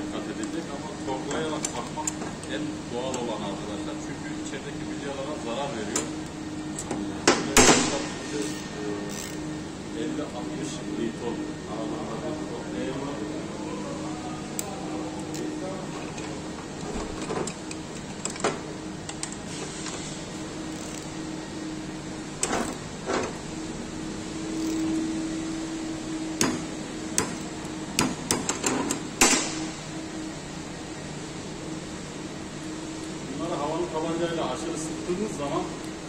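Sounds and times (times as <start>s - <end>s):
steady low hum: 0.0s - 36.0s
hand tools clicking on metal: 9.1s - 9.4s, 16.1s - 19.4s, 26.4s - 29.4s
torque wrench clicks: 9.1s - 9.4s, 20.7s - 21.1s, 24.6s - 25.0s.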